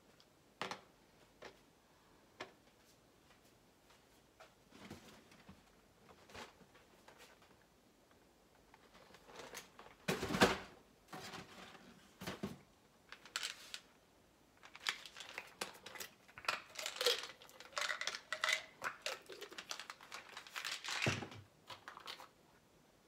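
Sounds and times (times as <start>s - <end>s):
gummy rattling in bottle: 14.6s - 22.3s.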